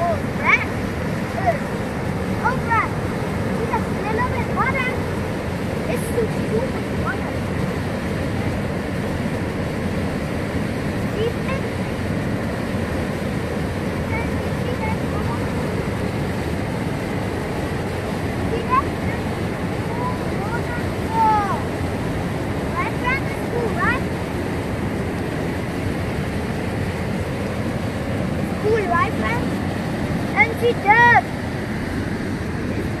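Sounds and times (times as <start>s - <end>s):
whitewater rushing over rock: 0.0s - 33.0s.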